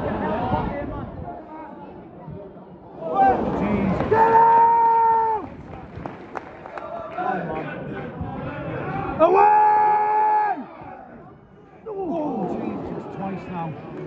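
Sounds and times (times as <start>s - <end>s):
football crowd noise: 0.0s - 14.0s.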